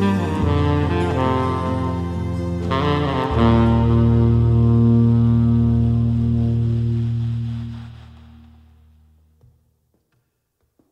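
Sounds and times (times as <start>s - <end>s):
tenor saxophone low note: 0.0s - 8.4s.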